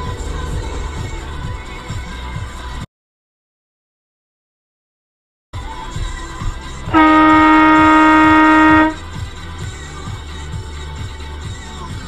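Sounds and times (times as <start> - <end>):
music with steady beat: 5.6 - 12.0
car horn blast: 6.9 - 9.1.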